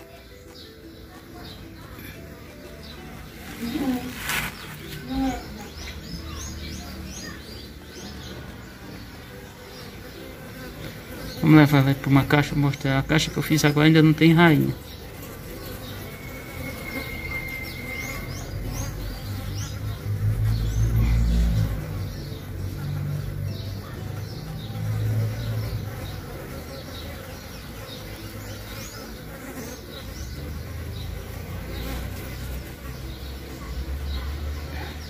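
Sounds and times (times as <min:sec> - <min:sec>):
bees buzzing: 0:00.0 - 0:35.0.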